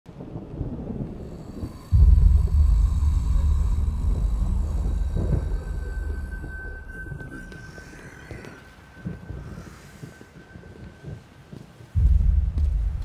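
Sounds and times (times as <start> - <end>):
deep low rumble: 0.5 - 11.2, 12.0 - 13.0.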